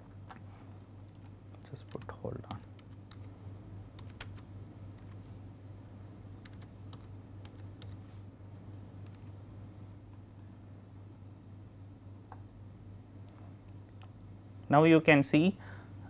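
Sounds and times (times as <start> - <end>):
low steady hum: 0.0 - 16.0
computer keyboard and mouse clicks: 1.1 - 3.3, 4.0 - 4.4, 6.4 - 8.0, 9.0 - 9.3.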